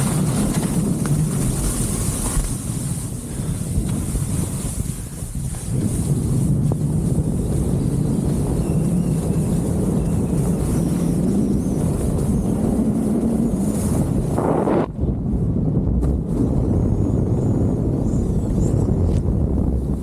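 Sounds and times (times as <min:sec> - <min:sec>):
skis hissing through slush: 0:00.0 - 0:14.4
wind rushing over microphone: 0:00.0 - 0:20.0.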